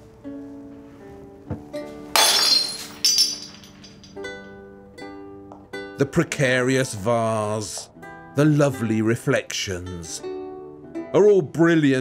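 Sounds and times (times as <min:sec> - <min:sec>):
plucked-string music: 0:00.0 - 0:02.2, 0:02.8 - 0:12.0
glass crashing and shattering: 0:02.2 - 0:04.3
glass pieces clinking: 0:02.2 - 0:04.3.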